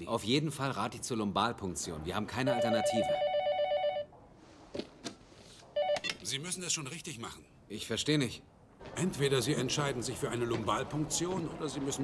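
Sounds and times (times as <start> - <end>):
two-tone telephone ringing: 2.5 - 4.1, 5.8 - 6.2.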